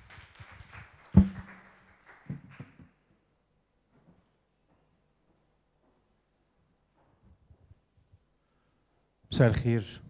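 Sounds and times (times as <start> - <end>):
audience applause: 0.0 - 2.8
thump on microphone: 1.2 - 1.4.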